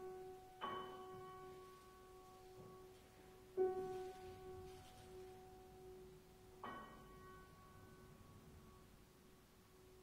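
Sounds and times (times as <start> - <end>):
soft piano note ringing: 0.0 - 10.0.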